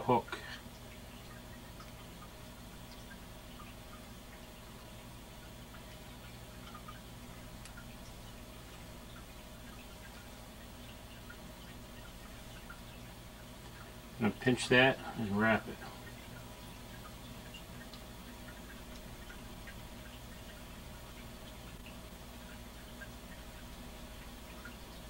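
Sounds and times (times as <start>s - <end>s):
low hum with hiss: 0.0s - 25.0s
faint small ticks: 0.5s - 14.2s, 15.8s - 25.0s.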